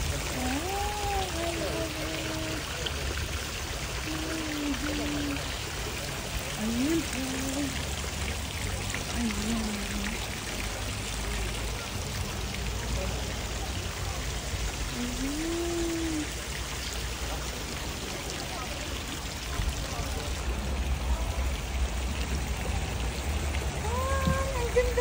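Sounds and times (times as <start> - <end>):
water pouring into pond: 0.0 - 25.0
person humming: 15.0 - 16.3.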